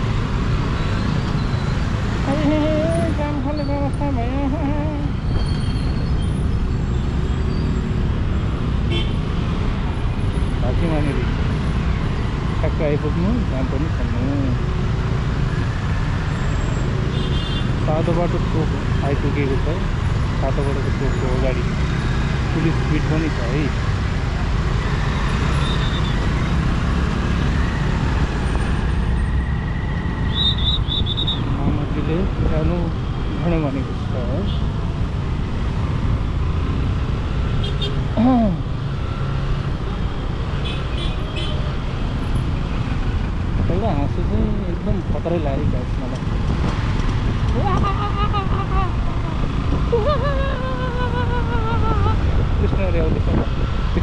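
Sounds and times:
road and traffic noise: 0.0 - 54.0
wind noise on microphone: 48.9 - 54.0.

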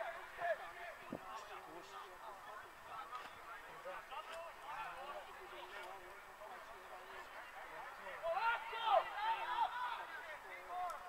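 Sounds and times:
voices shouting and calling out: 0.0 - 11.0.

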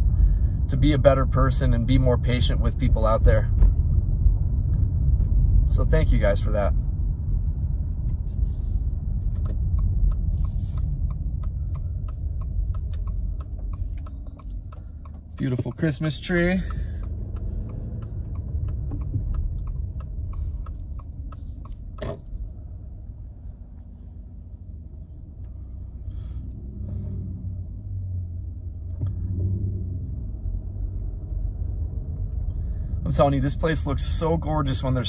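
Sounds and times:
car engine and tyres rumbling: 0.0 - 35.0
turn signal ticking: 0.0 - 35.0.

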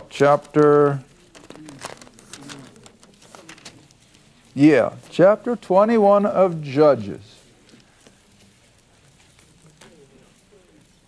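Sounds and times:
book pages rustling: 0.0 - 11.0.

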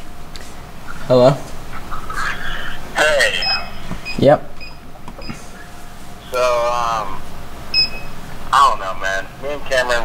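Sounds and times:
card reader beep: 7.8 - 8.2.

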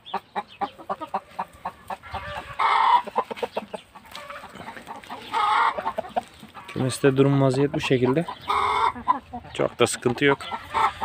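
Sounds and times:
chickens clucking: 0.0 - 11.0
loud chicken call: 1.2 - 3.3, 8.5 - 9.2.

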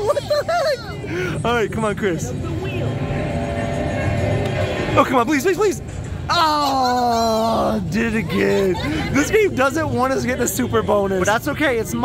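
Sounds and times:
low rumble: 0.8 - 6.3
arcade machine music: 2.7 - 6.3.

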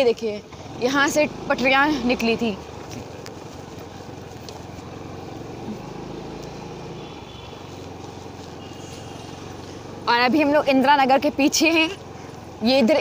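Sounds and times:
low engine rumble: 0.0 - 13.0
road traffic hum: 0.0 - 13.0.

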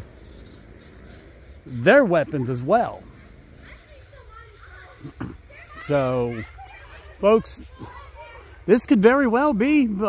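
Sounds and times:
faint children's voices: 0.1 - 10.0
man speaking: 1.7 - 3.1, 8.6 - 10.0.

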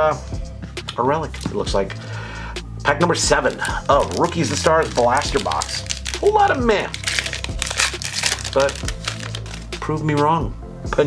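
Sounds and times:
foil wrapper crinkling and tearing: 3.3 - 9.7.

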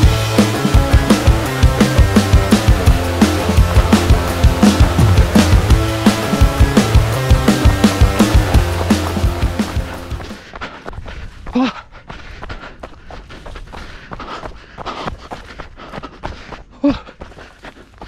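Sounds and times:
music with heavy beat: 0.0 - 10.4
footsteps on gravel path: 7.8 - 18.0.

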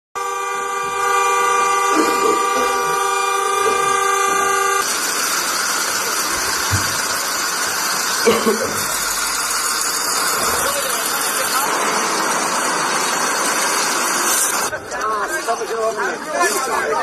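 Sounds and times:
vehicle horn blast: 0.2 - 4.9
traffic: 0.2 - 16.9
voices: 10.4 - 13.0.

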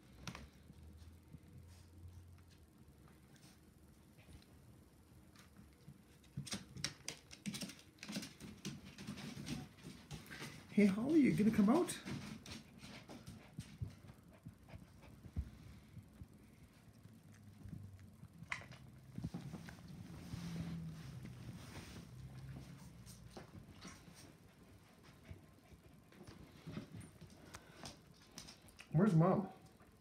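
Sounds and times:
puppies pattering and scuffling: 0.0 - 30.0.

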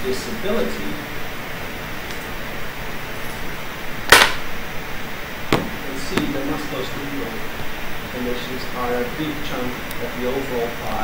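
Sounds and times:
room hiss: 0.0 - 11.0
sharp knock: 4.1 - 4.4, 5.5 - 6.5.

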